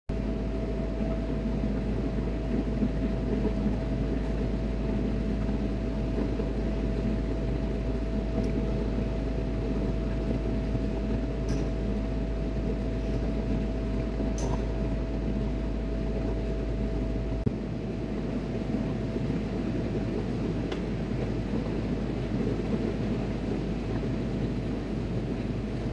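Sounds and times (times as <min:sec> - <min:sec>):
ship machinery drone: 0:00.1 - 0:25.9
thin steady whine: 0:00.1 - 0:25.9.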